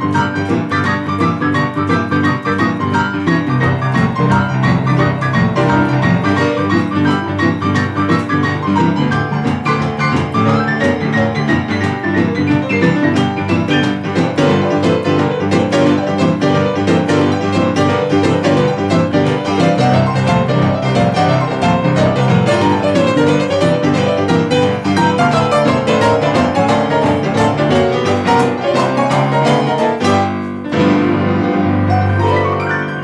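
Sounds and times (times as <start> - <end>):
boogie-woogie piano duet: 0.0 - 33.0.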